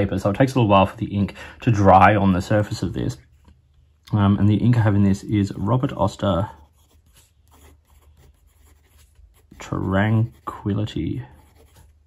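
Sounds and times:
pen nib scratching on paper: 6.6 - 10.6, 11.3 - 12.0.

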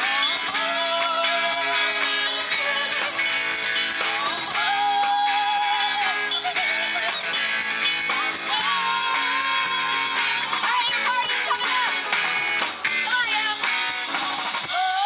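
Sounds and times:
rock band playing: 0.0 - 15.0.

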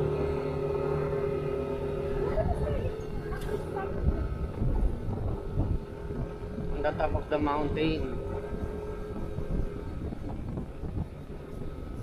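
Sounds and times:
motorcycle engine running: 0.0 - 12.0
road and wind rumble: 0.0 - 12.0.

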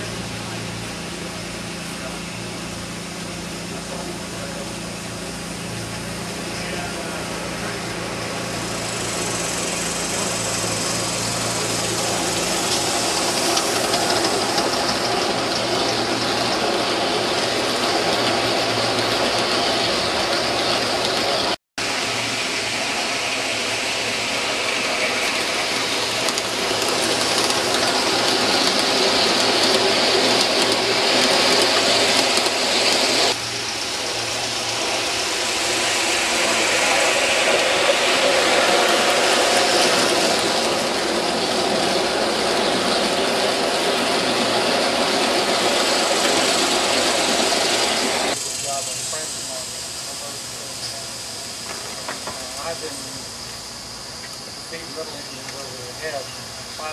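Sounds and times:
steam locomotive hissing: 0.0 - 56.9
wheels running on track: 0.0 - 56.9.

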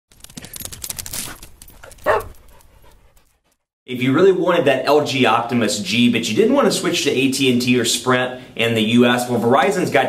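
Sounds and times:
dog panting: 1.8 - 3.7
dog barking: 2.0 - 2.3.

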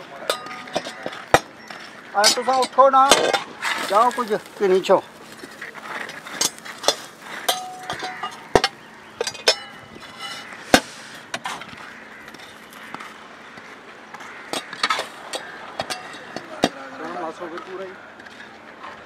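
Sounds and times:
metal rod clinking on metal lids: 0.2 - 1.5, 6.1 - 10.4.

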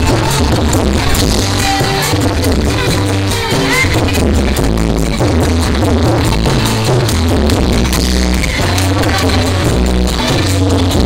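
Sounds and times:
live band music through speakers: 0.0 - 11.0.

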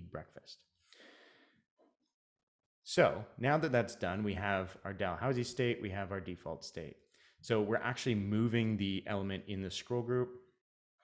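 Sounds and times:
man speaking: 0.0 - 0.6, 2.9 - 10.4.

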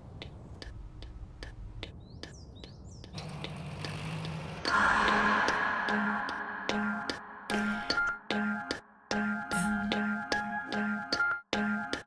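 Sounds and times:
steady ticking: 0.2 - 11.2
low rumble: 4.5 - 8.3.

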